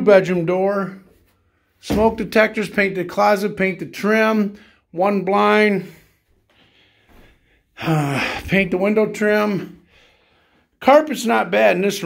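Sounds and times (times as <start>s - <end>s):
man speaking: 0.0s - 1.1s, 1.8s - 6.1s, 7.8s - 9.8s, 10.8s - 12.0s
man breathing in: 5.9s - 8.5s, 9.8s - 10.8s.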